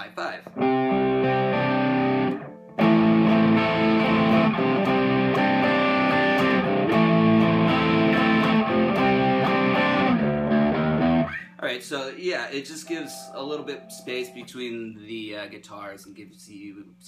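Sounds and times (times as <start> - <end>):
electric guitar chords with chorus: 0.5 - 11.4.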